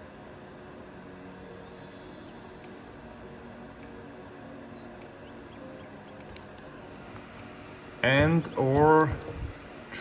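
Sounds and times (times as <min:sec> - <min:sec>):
low hiss and hum: 0:00.0 - 0:10.0.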